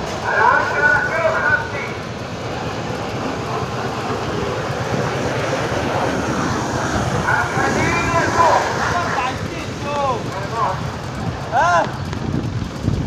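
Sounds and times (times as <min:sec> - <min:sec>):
outdoor rumble and hiss: 0:00.0 - 0:13.0.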